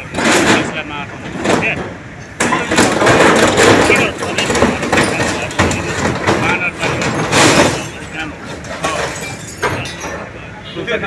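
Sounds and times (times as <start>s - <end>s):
sheet metal scraping and crumpling: 0.0s - 10.3s
diesel engine under load: 0.0s - 11.0s.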